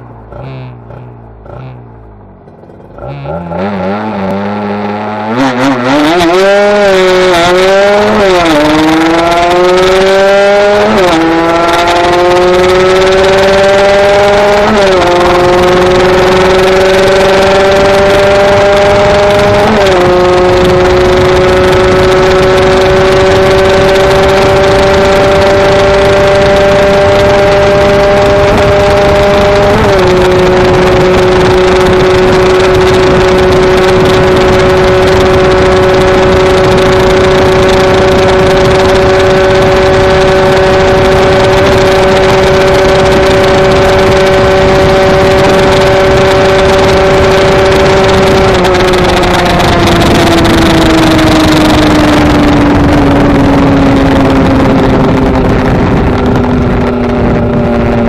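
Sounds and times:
motorcycle engine at full throttle: 0:00.0 - 0:58.0.

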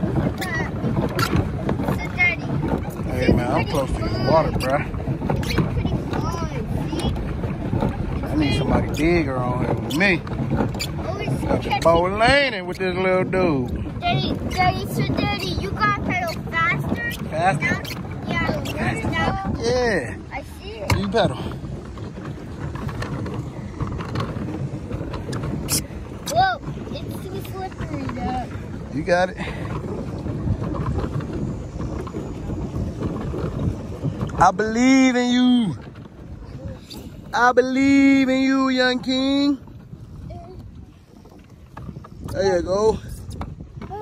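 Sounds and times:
water churned by paddle wheel: 0:00.0 - 0:44.0
wind on microphone: 0:00.0 - 0:44.0.

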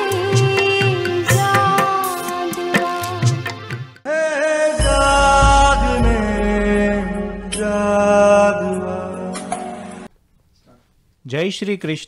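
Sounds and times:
devotional chant music: 0:04.0 - 0:10.1.

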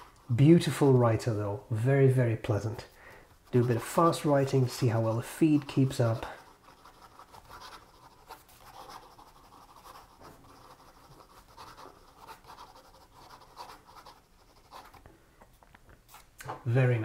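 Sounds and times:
fountain pen scratching on paper: 0:03.4 - 0:15.0.

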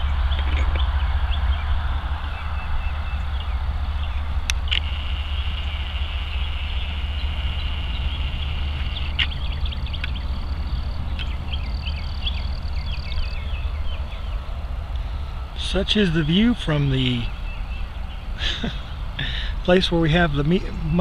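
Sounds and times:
small birds chirping: 0:00.0 - 0:21.0.

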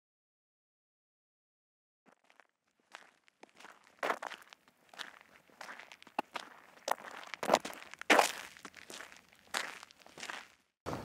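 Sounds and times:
footsteps on gravel: 0:02.1 - 0:10.7.

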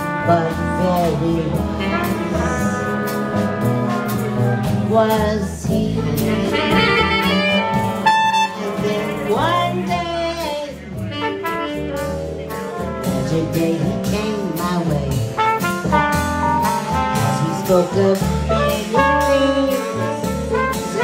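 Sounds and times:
woman singing: 0:00.0 - 0:03.1, 0:04.8 - 0:11.1, 0:12.7 - 0:15.4, 0:17.3 - 0:21.0
bass line: 0:00.0 - 0:21.0
horn lines: 0:00.0 - 0:21.0.

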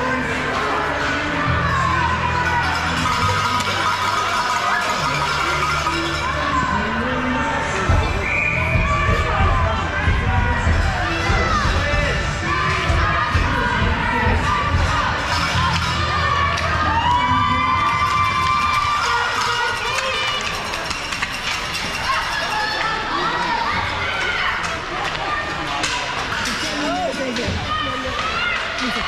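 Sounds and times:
children shouting and cheering: 0:00.0 - 0:29.0.

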